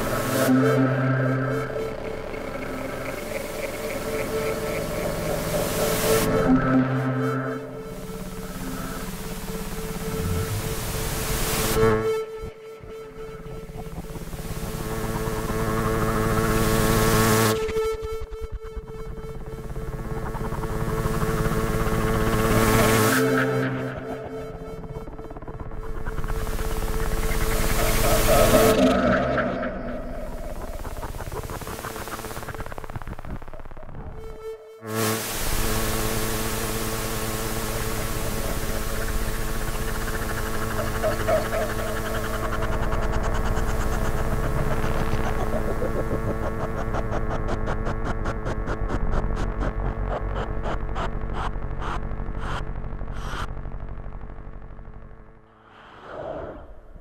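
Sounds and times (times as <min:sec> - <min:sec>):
pulsing noisy electronic swell: 0:00.0 - 0:53.5
steady held electronic tone: 0:00.0 - 0:53.5.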